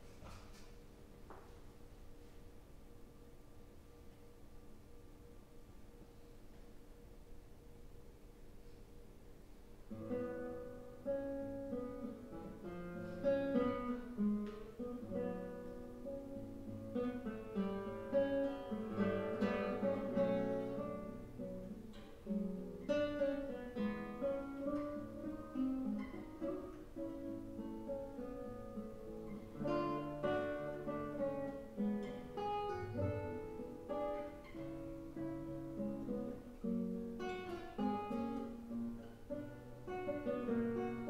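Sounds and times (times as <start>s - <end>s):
fingerstyle classical guitar: 9.9s - 41.0s.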